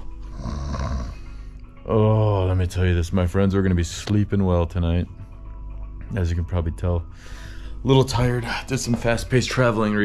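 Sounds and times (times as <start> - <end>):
background music: 0.0 - 10.0
man mock snoring: 0.3 - 1.3.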